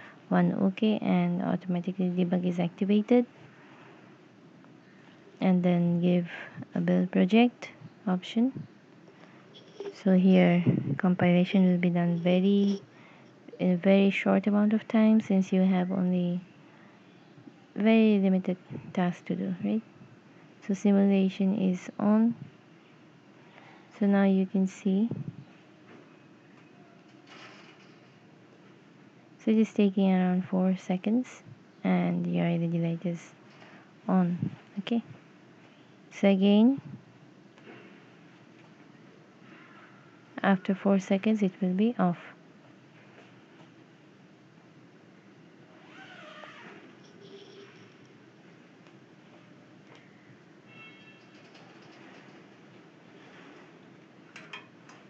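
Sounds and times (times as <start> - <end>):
faint room hiss: 0.0 - 55.0
faint high-pitched tone: 50.7 - 51.3.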